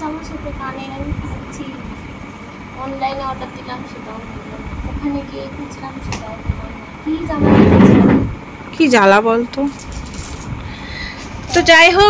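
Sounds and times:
low rumble: 6.5 - 8.5.

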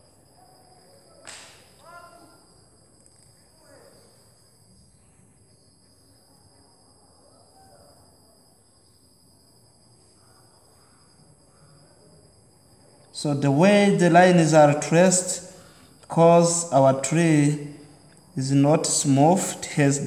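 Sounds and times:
faint high whine: 0.0 - 20.0
sharp click: 1.2 - 1.7.

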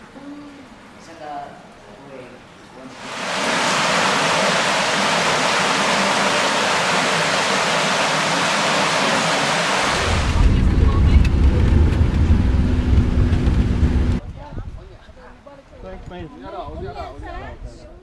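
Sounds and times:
rushing water in a cave: 2.9 - 10.5
wind buffeting: 3.0 - 14.8
vehicle engine rumble: 9.0 - 14.2.

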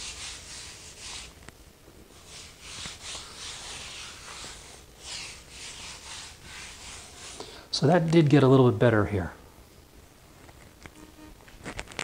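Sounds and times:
towel wiping wet tile floor: 0.0 - 1.4, 2.1 - 7.4.

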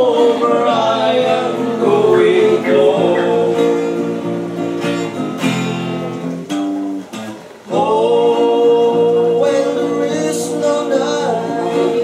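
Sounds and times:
men singing together: 0.0 - 4.6, 7.7 - 12.0
acoustic guitar strumming: 0.0 - 12.0.

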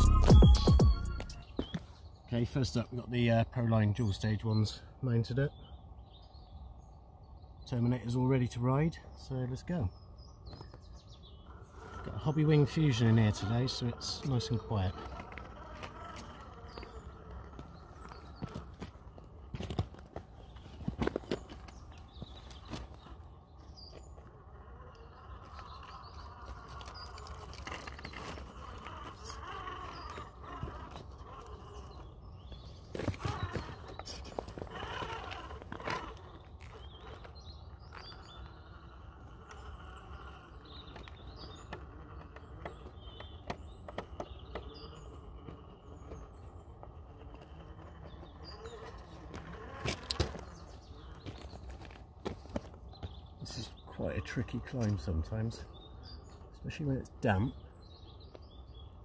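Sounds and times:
tyres knocking and scraping on rock: 13.2 - 23.2, 25.2 - 53.2.

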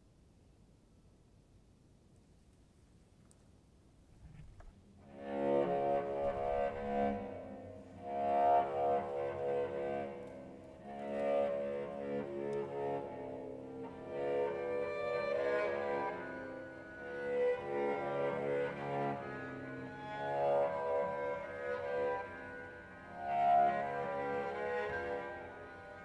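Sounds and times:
string trio bowed chords: 5.0 - 26.0.

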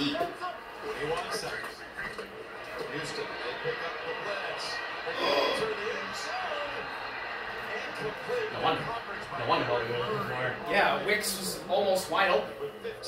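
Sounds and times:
football broadcast on television: 0.0 - 13.0.

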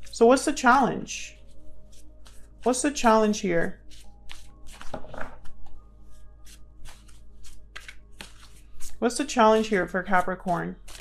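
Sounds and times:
soft background music: 0.0 - 11.0
cards being shuffled: 1.4 - 2.8, 3.8 - 11.0.

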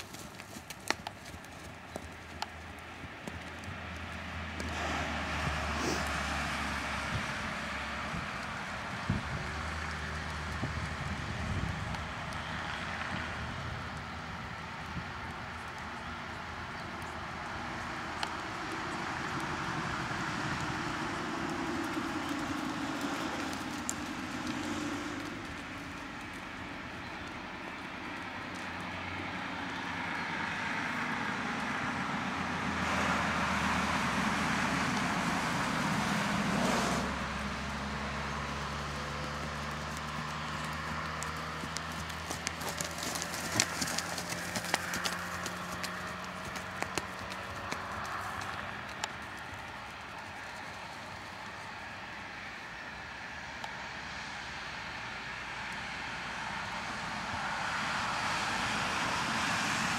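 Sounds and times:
horse hoofbeats on sand: 0.0 - 6.3, 18.4 - 29.5, 37.7 - 51.2
sharp hoof ticks: 0.0 - 6.3, 7.1 - 31.9, 37.4 - 51.9
steady engine hum: 0.0 - 59.9
vehicle passing: 0.0 - 59.9.

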